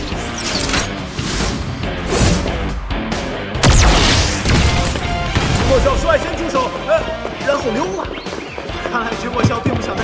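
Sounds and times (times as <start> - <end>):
dramatic background music: 0.0 - 10.0.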